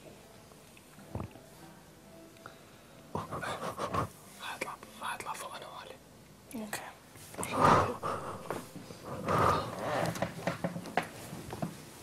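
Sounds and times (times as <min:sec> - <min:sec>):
people whispering: 0:03.1 - 0:10.2.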